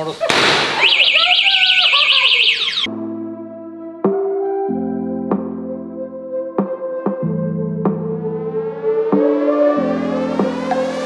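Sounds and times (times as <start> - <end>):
voices: 0.0 - 2.9
warbling electronic alarm tone: 0.8 - 2.9
calm synthesizer music: 1.3 - 11.0.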